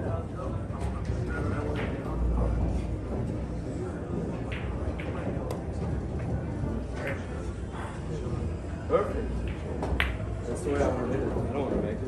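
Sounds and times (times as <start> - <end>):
murmur of voices: 0.0 - 12.0.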